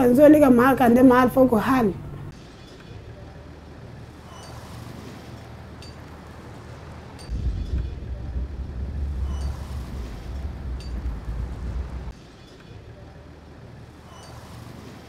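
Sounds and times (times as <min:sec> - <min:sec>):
cars and motorbikes passing: 0:03.5 - 0:12.2
loud low rumble: 0:07.3 - 0:12.1.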